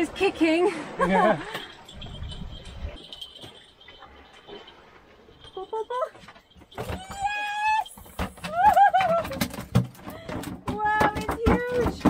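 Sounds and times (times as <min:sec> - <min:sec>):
fish slapping on wooden grating: 0:06.6 - 0:12.0.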